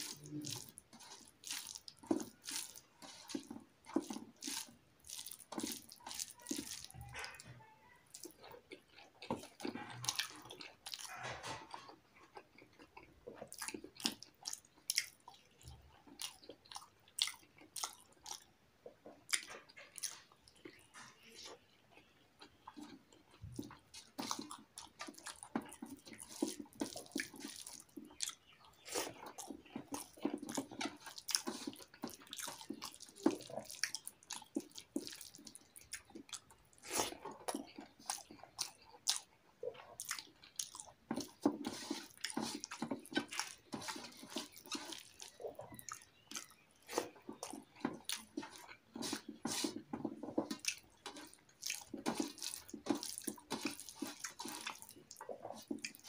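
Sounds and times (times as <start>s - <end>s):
person chewing food: 0.0s - 56.0s.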